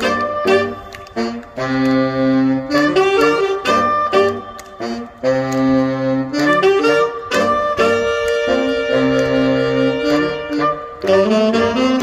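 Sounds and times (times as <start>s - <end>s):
saxophone ensemble playing: 0.0s - 12.0s.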